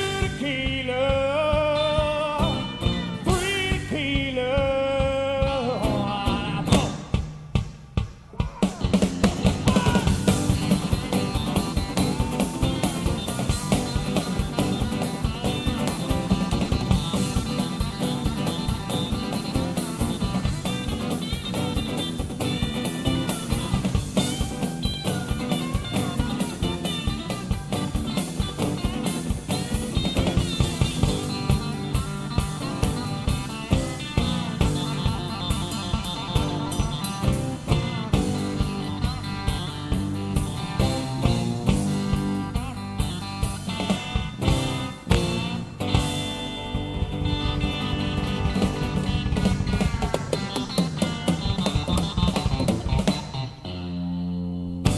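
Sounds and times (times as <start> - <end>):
electric guitar lead: 0.0 - 4.7, 8.6 - 54.9
drum kit: 0.0 - 54.1, 54.7 - 54.9
bass guitar: 0.0 - 54.9.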